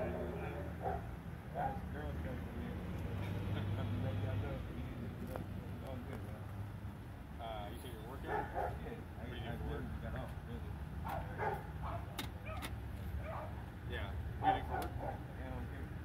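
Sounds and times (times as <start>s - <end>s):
distant dog barking: 0.0s - 2.0s, 8.2s - 9.0s, 11.0s - 12.6s, 13.2s - 13.6s, 14.4s - 15.3s.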